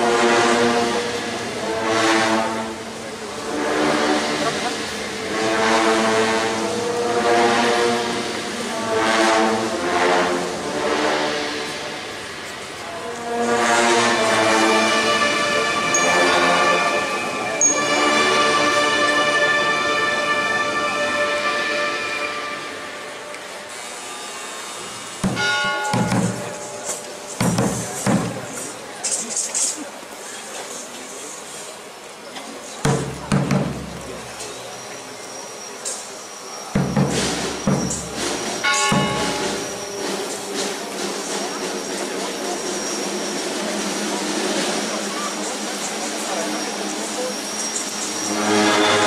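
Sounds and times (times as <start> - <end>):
brass band playing slow chords: 0.0 - 23.8, 24.5 - 29.1, 32.9 - 34.5, 36.8 - 41.6, 48.2 - 49.0
background noise: 0.0 - 49.0.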